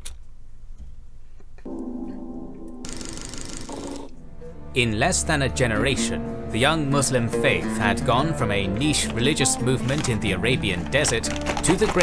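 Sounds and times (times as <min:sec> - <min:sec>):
held low chord: 0:01.7 - 0:03.0.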